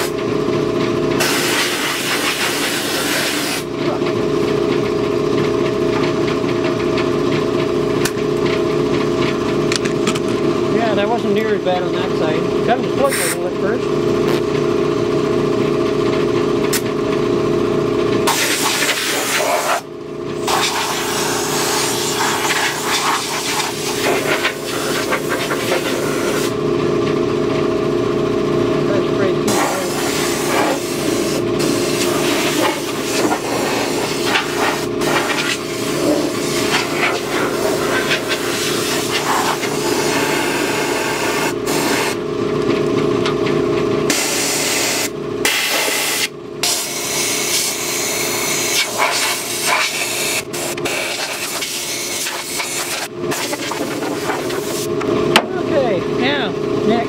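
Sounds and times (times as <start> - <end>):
steady motor hum: 0.0 - 57.0
sand blaster hissing: 1.2 - 3.7, 18.3 - 19.8, 20.5 - 26.5, 29.5 - 42.2, 44.1 - 54.9.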